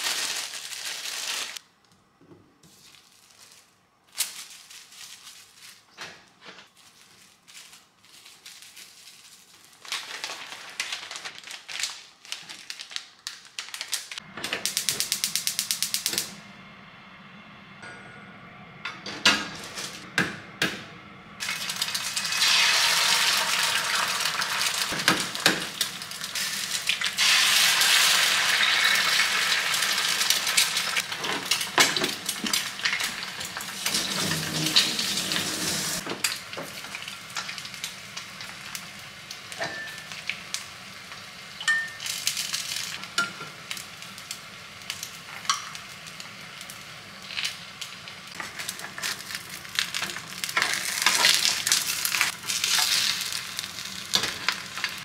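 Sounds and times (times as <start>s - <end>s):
eggs sizzling in frying pan: 21.4s - 55.0s.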